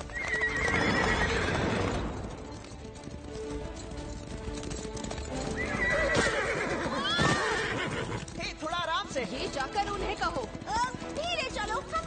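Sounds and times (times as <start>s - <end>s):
horse whinnies: 0.0s - 2.2s, 5.4s - 8.4s
background music: 0.0s - 12.0s
galloping hoofbeats: 0.0s - 12.0s.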